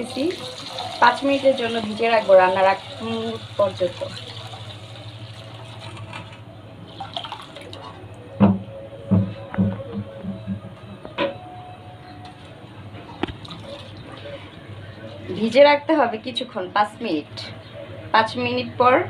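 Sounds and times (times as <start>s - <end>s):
water pouring into a steel bowl: 0.0s - 8.0s.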